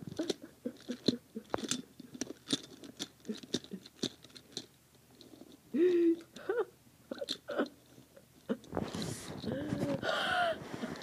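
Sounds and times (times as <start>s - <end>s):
person giggling breathily: 0.0s - 1.6s, 5.7s - 7.8s, 8.4s - 11.0s
plastic toy rattling: 0.0s - 6.4s.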